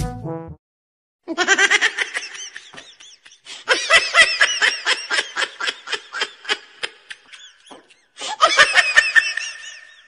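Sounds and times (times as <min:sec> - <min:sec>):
person laughing: 0:01.3 - 0:10.0.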